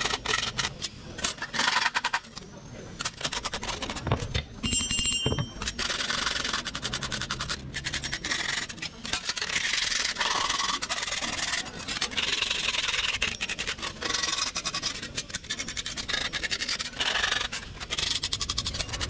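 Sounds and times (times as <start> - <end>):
file rasping on metal sheet: 5.8 - 19.0.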